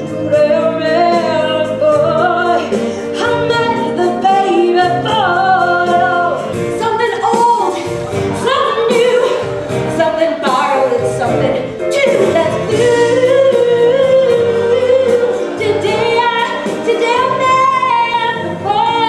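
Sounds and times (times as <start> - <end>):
instrumental accompaniment: 0.0 - 19.0
voices singing pop song: 0.0 - 19.0.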